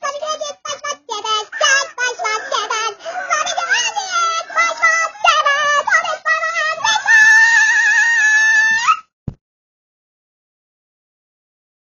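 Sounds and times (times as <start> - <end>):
high-pitched sing-song voice: 0.0 - 9.1.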